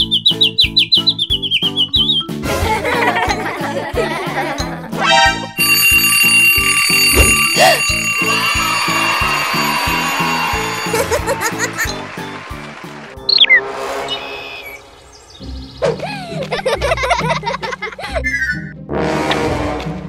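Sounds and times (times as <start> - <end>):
alarm bell ringing: 5.6 - 12.0.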